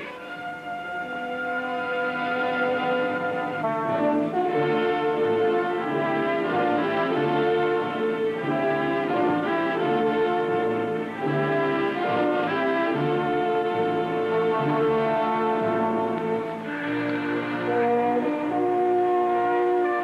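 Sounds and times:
orchestral film music with brass: 0.0 - 20.0.

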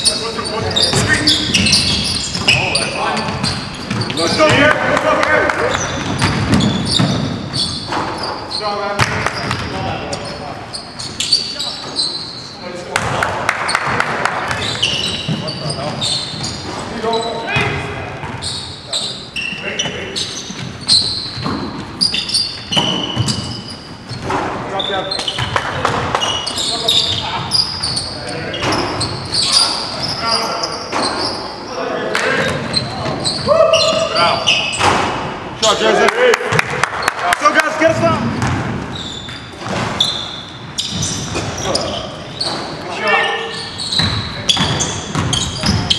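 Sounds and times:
sneakers squeaking: 0.0 - 35.9, 36.5 - 45.9
basketball bouncing on wooden floor: 3.2 - 4.8, 5.7 - 8.3, 9.0 - 9.8, 20.4 - 22.0, 22.6 - 24.6, 25.2 - 26.4, 38.2 - 38.9, 44.0 - 45.9
players calling out: 24.6 - 39.4.

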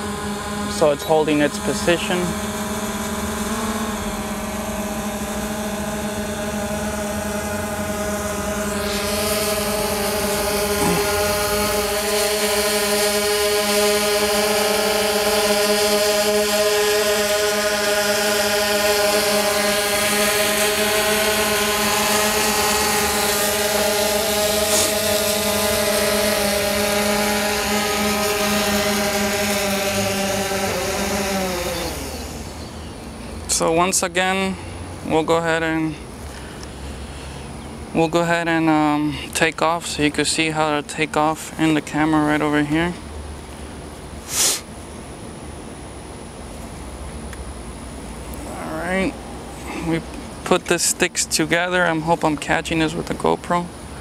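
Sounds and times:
quadcopter motors whining: 0.0 - 54.0.

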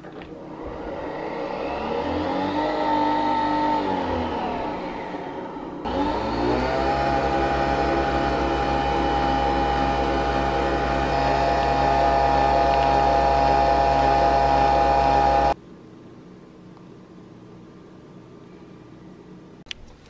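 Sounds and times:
coffee machine motor whirring: 0.0 - 15.6.

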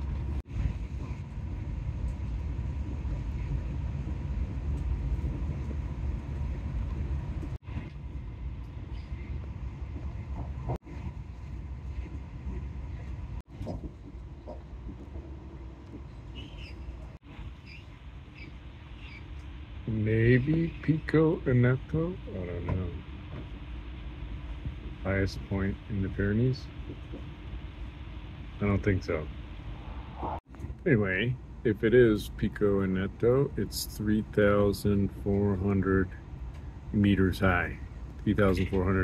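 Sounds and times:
train wheels rumbling on track: 0.0 - 17.5
faint steady whine: 0.0 - 39.0.

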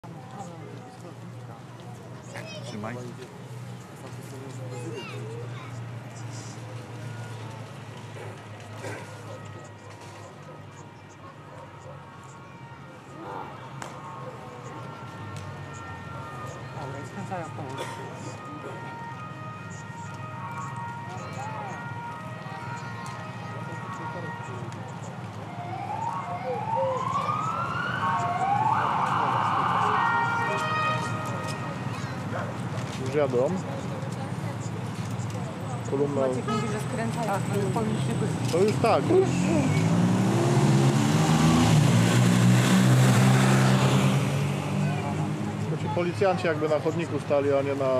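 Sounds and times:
faint crowd voices: 0.0 - 41.4, 43.3 - 47.9
police sirens wailing: 3.8 - 47.9.

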